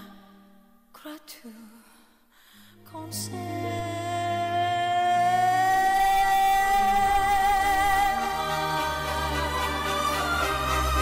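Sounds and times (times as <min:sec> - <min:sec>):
soft instrumental accompaniment: 0:02.6 - 0:11.0.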